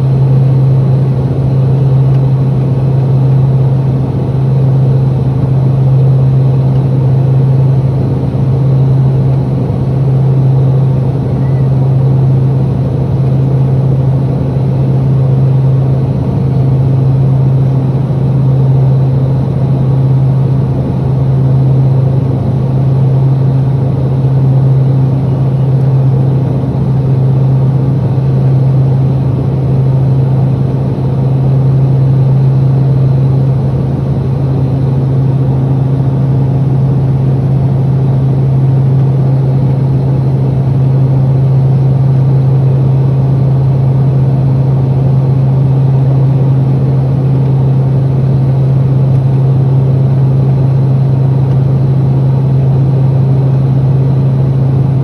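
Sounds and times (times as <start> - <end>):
turboprop cabin drone: 0.0 - 55.0.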